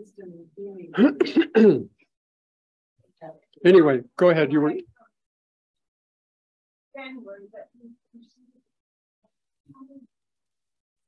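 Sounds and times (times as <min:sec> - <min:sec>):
man clearing his throat: 0:01.0 - 0:02.0.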